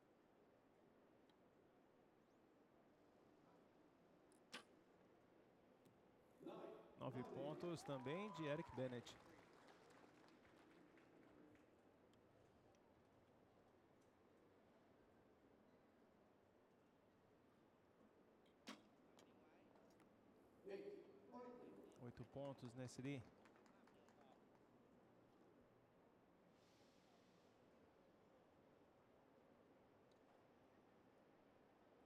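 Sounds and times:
bow shot click: 4.4s - 4.8s.

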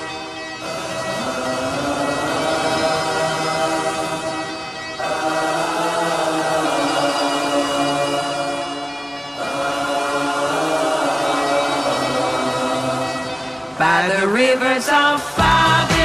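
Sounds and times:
singers holding notes in harmony: 0.0s - 16.0s.

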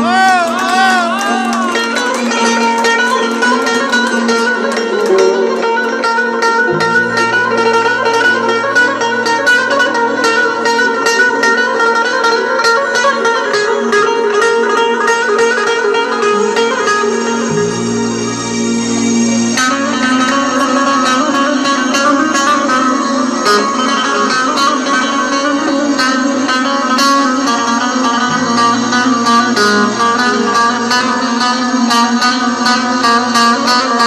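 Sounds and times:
plucked saz over drone: 0.0s - 34.0s
low bass note: 6.7s - 11.8s.

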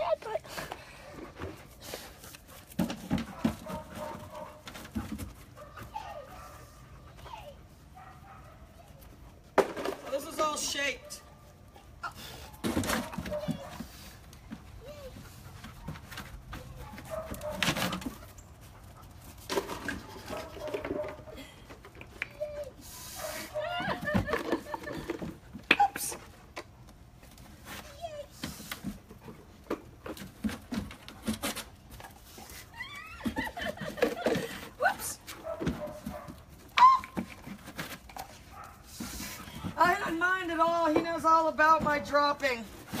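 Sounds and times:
dog barking: 3.3s - 4.6s, 8.0s - 8.7s, 13.0s - 13.7s, 16.8s - 17.8s, 23.2s - 23.7s, 35.4s - 36.4s, 38.5s - 38.8s
dog whining: 36.7s - 37.4s.

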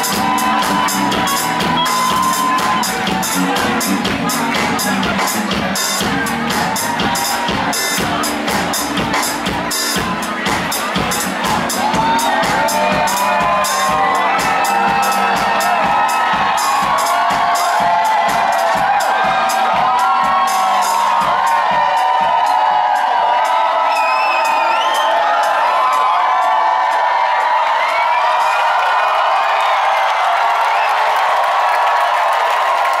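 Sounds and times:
drum kit beat with cymbals: 0.0s - 27.2s
audience cheering and whooping: 0.0s - 33.0s.

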